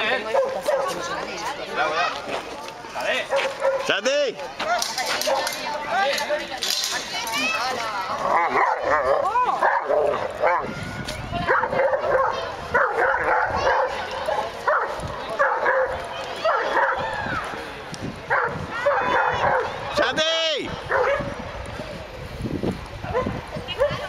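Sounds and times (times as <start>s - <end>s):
dogs barking and yipping: 0.1s - 1.2s, 3.2s - 3.9s, 4.6s - 5.7s, 8.2s - 10.8s, 11.4s - 17.1s, 18.3s - 19.9s, 20.8s - 21.4s, 23.0s - 24.0s.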